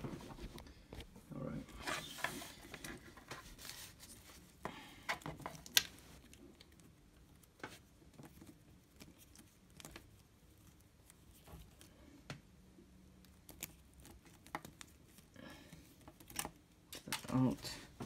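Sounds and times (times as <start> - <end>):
cables rustling: 0.0 - 12.3.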